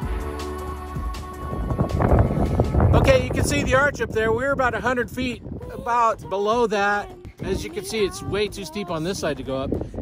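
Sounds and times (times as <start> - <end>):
background music: 0.0 - 4.1, 5.4 - 9.8
wind rumbling on microphone: 0.7 - 10.0.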